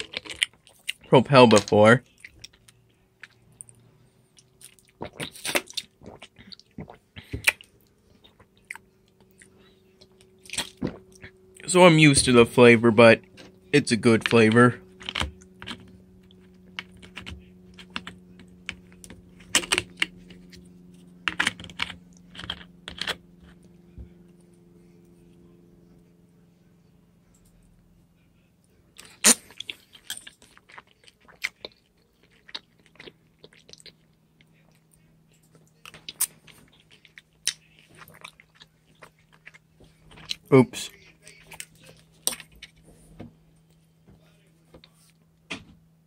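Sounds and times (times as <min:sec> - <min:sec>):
chewing cereal crunches: 0:00.0 - 0:03.8, 0:14.2 - 0:23.6, 0:29.0 - 0:42.8
low hum: 0:06.0 - 0:30.4.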